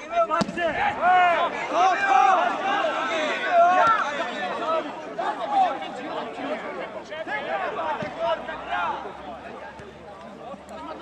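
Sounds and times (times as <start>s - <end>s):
players and spectators shouting: 0.0s - 11.0s
football being kicked: 8.0s - 8.3s.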